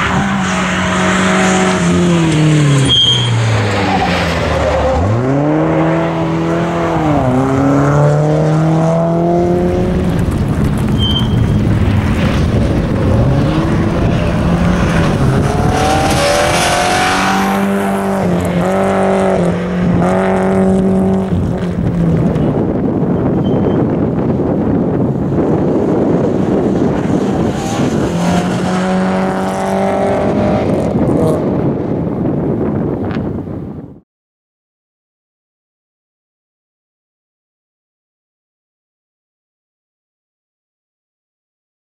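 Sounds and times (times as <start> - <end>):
rally car engine revving: 0.0 - 32.9
tyre and road noise: 0.0 - 34.0.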